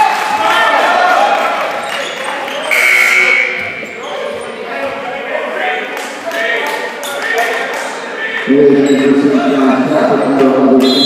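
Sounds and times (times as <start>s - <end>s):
voices in large hall: 0.0s - 11.0s.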